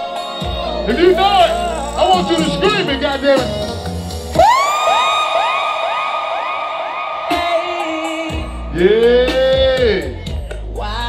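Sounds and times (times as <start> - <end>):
music: 0.0 - 11.0
electronic siren swoops: 4.3 - 8.7.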